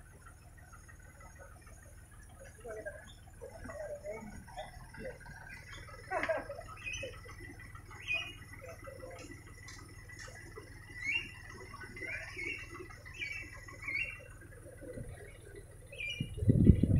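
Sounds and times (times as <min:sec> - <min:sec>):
small bird chirping: 0:02.7 - 0:06.0, 0:06.6 - 0:09.4, 0:10.2 - 0:16.6.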